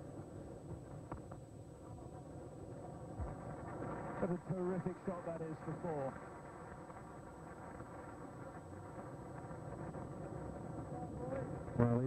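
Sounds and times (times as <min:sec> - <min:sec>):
cricket crowd noise: 0:00.0 - 0:12.0.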